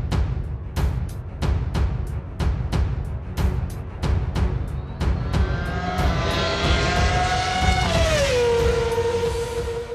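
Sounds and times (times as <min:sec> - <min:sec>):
logo theme music: 0:00.0 - 0:09.4.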